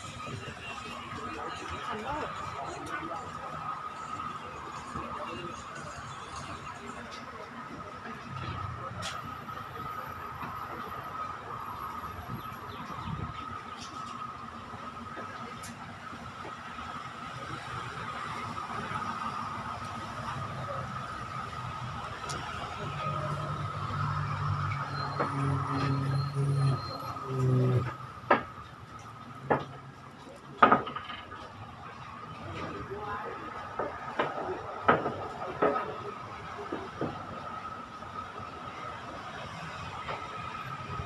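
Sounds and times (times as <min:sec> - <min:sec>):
road traffic: 0:00.0 - 0:41.0
engine drone with high whine: 0:08.1 - 0:30.4.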